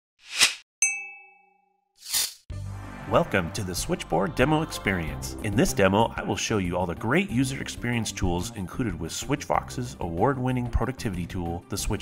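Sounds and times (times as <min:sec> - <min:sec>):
bell-like ding: 0:00.8 - 0:01.9.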